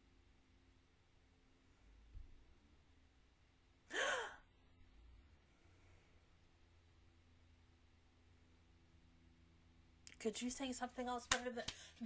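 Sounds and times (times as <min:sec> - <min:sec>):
person gasping: 0:03.9 - 0:04.4.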